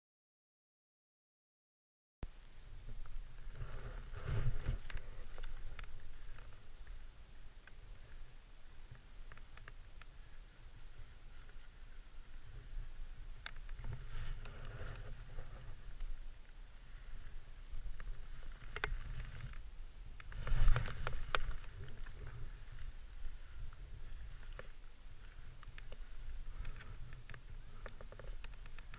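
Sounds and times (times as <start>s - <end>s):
low microphone rumble: 2.2s - 28.9s
wind buffeting a camera: 2.8s - 28.9s
skis sliding through snow: 3.2s - 7.1s, 10.1s - 28.9s.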